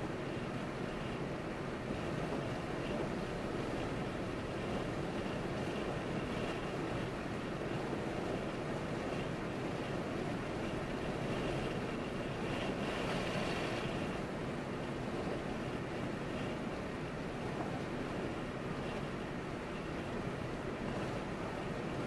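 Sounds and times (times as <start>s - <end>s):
car tyre and wind noise: 0.0s - 22.0s.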